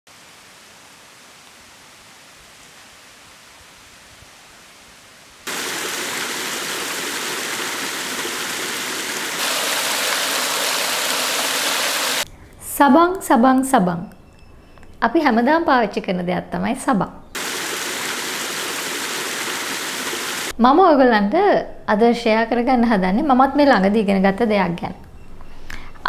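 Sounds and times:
small cascade splashing: 5.4s - 12.3s, 17.4s - 20.5s
water running over rocks: 5.4s - 12.3s, 17.4s - 20.5s.

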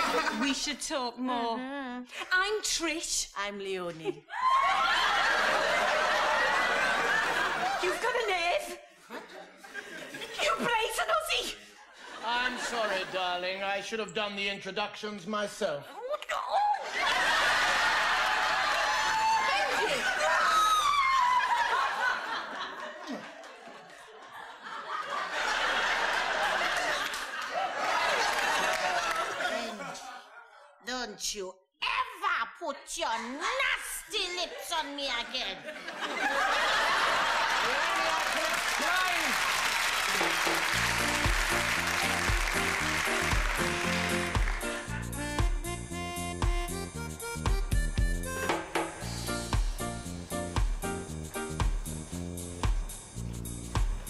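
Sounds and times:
audience laughing: 0.0s - 0.8s, 4.4s - 10.8s, 11.5s - 13.6s, 16.7s - 30.8s, 34.5s - 45.2s.

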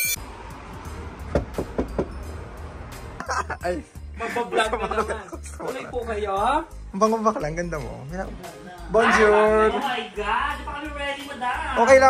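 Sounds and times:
knuckles knocking on door: 1.3s - 2.1s.

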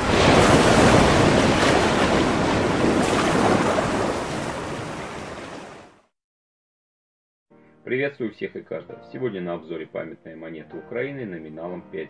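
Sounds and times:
rush of wind: 0.0s - 5.8s
sea surf: 0.0s - 6.0s.

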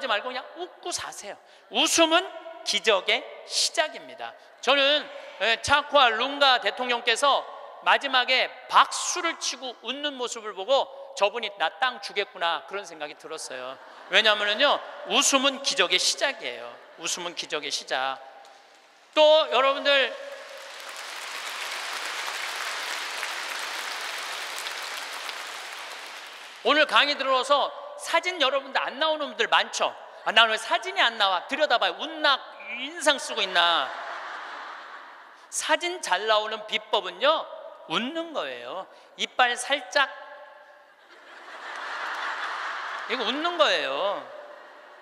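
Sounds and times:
large audience laughing: 13.6s - 15.2s, 33.6s - 35.4s, 41.0s - 43.4s, 44.4s - 45.0s
large audience applauding: 20.1s - 26.7s, 41.6s - 43.3s.

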